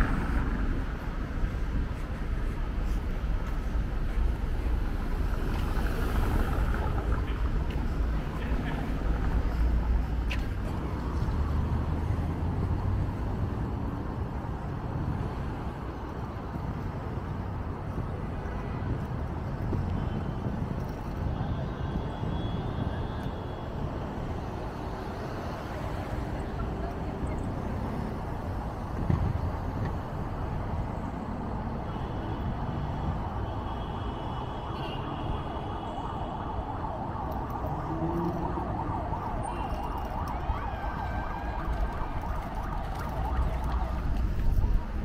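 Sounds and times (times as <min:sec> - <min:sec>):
traffic hum: 0:00.0 - 0:45.0
background voices: 0:37.4 - 0:39.9.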